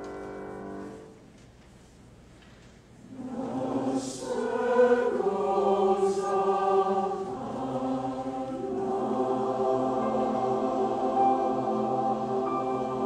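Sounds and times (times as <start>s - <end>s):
mixed choir singing chords: 3.0s - 13.0s.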